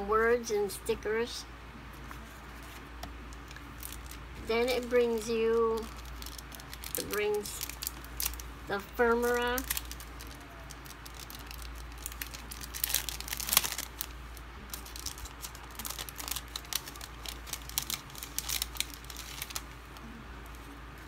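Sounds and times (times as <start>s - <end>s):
plastic packaging crinkling: 2.6s - 20.6s.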